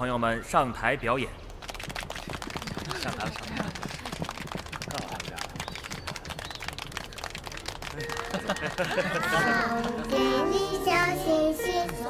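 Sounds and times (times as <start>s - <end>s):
audience applauding: 1.7s - 10.3s.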